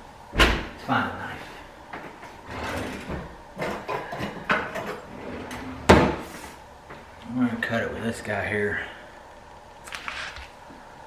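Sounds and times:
kitchen drawer sliding: 2.4 - 6.6
utensils clattering: 2.5 - 5.8
drawer knocking shut: 5.8 - 6.2.

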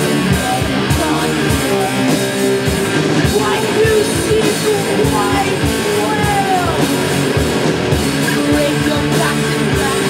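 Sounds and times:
drum hits: 0.0 - 10.0
rock band playing: 0.0 - 10.0.

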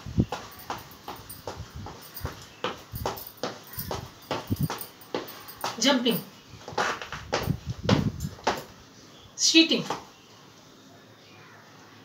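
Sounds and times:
running footsteps on hard floor: 0.2 - 8.7.

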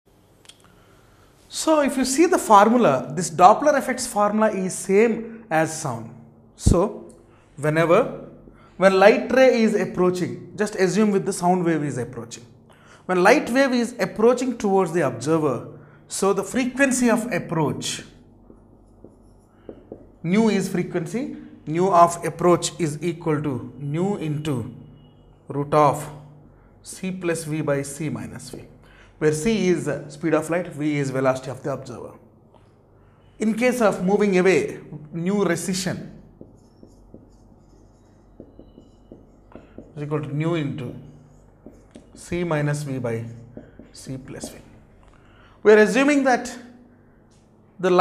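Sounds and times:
marker writing on whiteboard: 16.4 - 21.5, 27.5 - 28.8, 34.9 - 45.0
marker tip tapping board: 18.4 - 20.2, 36.4 - 40.3, 41.0 - 44.8.

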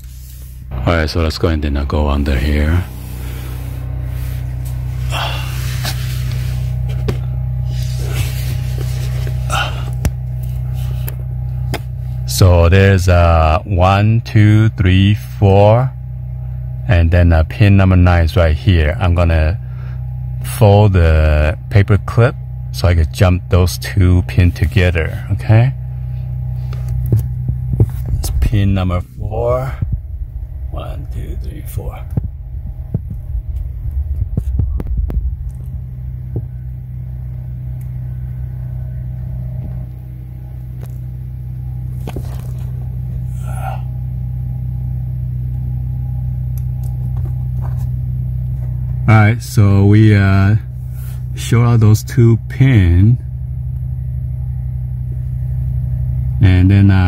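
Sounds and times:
low hum: 0.0 - 57.0.

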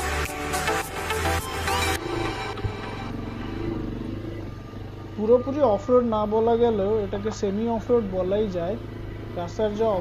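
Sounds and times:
motorcycle engine running: 0.7 - 10.0.

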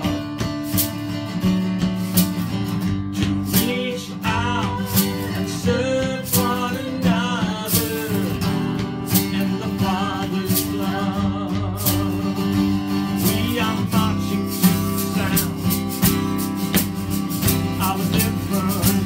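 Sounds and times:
man singing: 0.0 - 0.5, 3.2 - 19.0
acoustic guitar strumming: 0.0 - 19.0.

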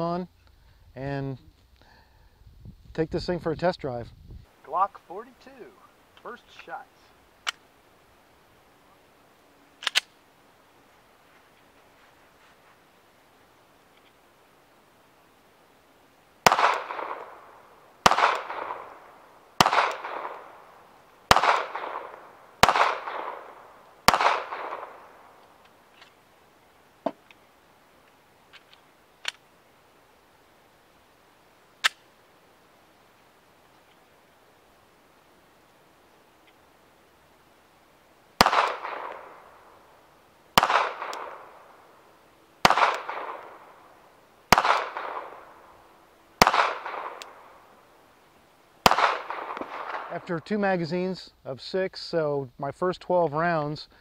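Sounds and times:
pistol reloading clicks: 7.4 - 7.6, 9.8 - 10.2, 28.0 - 29.4, 31.8 - 32.0, 40.6 - 41.4, 46.4 - 47.4
pistol shots with echo: 16.4 - 25.4, 38.4 - 39.8, 40.6 - 41.9, 42.6 - 43.8, 44.5 - 45.7, 46.4 - 47.6, 48.8 - 50.3.

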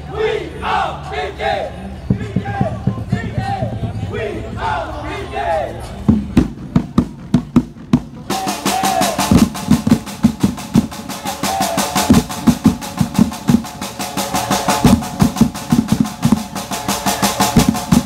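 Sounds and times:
drum band playing: 6.1 - 18.0.

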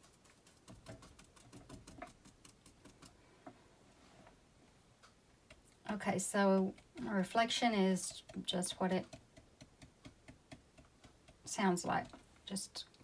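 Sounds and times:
paintbrush tapping on palette: 8.1 - 12.2.

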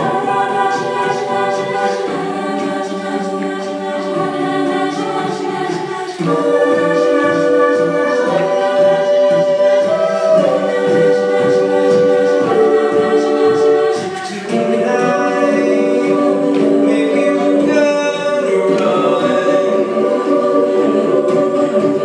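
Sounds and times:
choir singing a cappella: 0.0 - 22.0.

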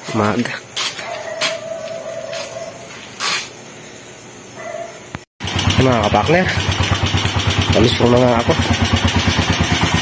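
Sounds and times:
short scrape: 2.4 - 3.6.

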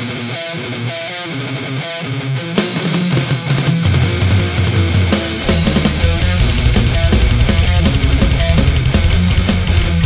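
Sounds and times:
distorted electric guitar riff: 0.0 - 10.0.

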